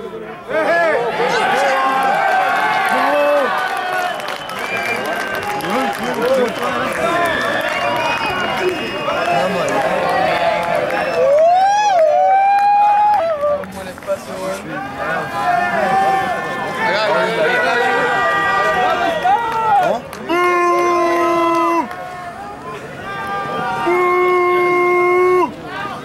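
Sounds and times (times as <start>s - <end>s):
men shouting and calling out: 0.0s - 4.2s, 4.9s - 26.0s.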